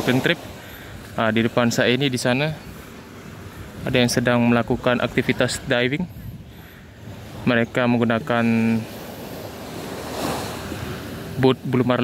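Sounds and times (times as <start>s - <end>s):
small waves washing onto shore: 0.0s - 12.0s
wind on microphone: 3.4s - 7.5s.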